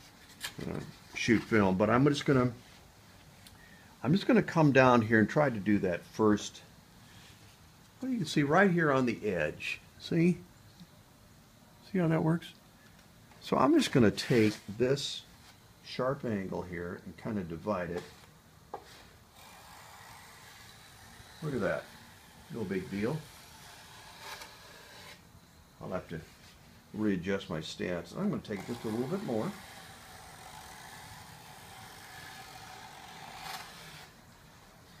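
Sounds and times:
hand plane shaving wood: 18.9s - 25.2s, 28.5s - 34.1s.

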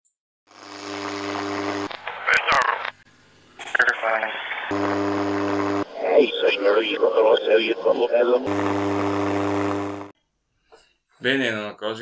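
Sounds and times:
radio electronic buzz with hiss: 0.5s - 3.0s, 3.6s - 10.1s.

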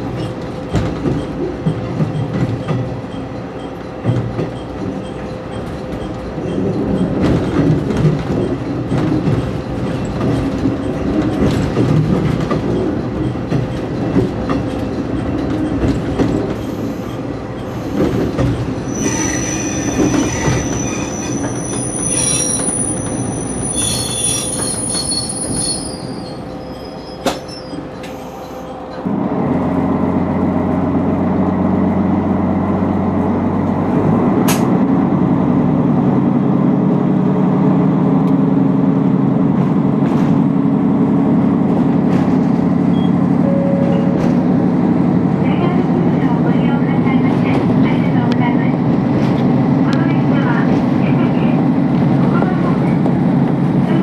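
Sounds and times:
train rumbling and clattering: 0.0s - 54.0s
train wheels squealing: 14.6s - 29.0s.

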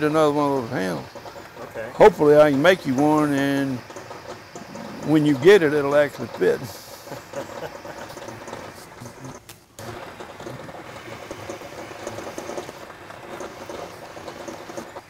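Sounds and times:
metal lathe fast chatter: 0.0s - 15.0s.

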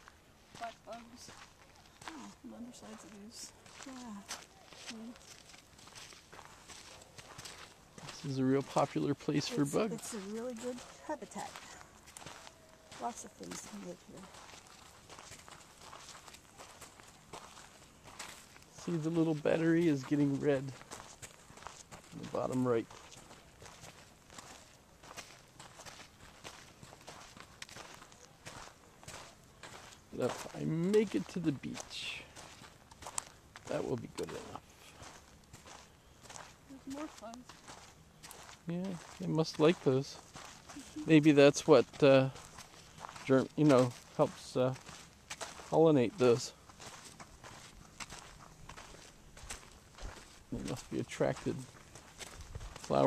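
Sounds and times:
footsteps crunching on gritty ground: 0.0s - 53.0s.

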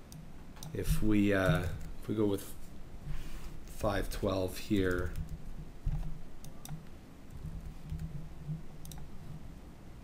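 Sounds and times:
mouse and keyboard clicks: 4.8s - 8.1s, 8.8s - 9.1s.

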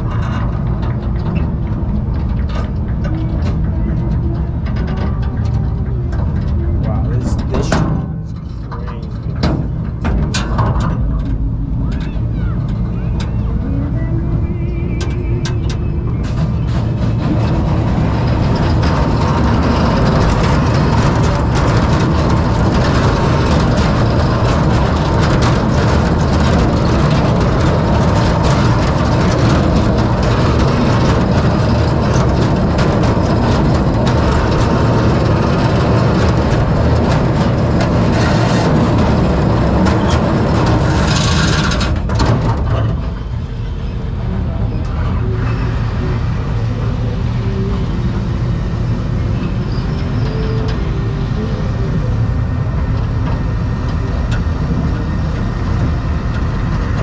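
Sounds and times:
roller coaster wheel rumble: 0.0s - 57.0s
wind rushing over microphone: 0.0s - 57.0s.

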